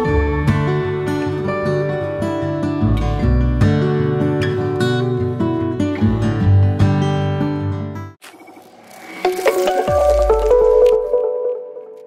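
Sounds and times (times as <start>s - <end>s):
rising electronic tones: 8.2s - 11.3s.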